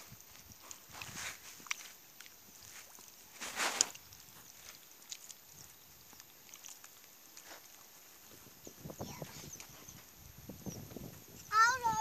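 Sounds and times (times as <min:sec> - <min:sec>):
squelches of wading through mud: 0:00.0 - 0:10.5
child calling: 0:11.5 - 0:12.0.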